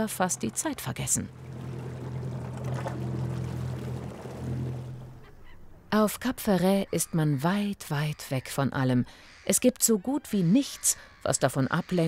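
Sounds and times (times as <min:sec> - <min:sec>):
water rushing in wake: 0:00.0 - 0:05.3
motorboat engine droning: 0:00.0 - 0:05.5.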